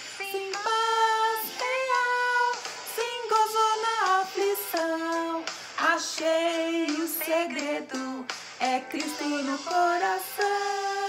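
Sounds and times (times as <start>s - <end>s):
children's voices singing on recording: 0.0s - 11.0s
woman singing: 0.0s - 11.0s.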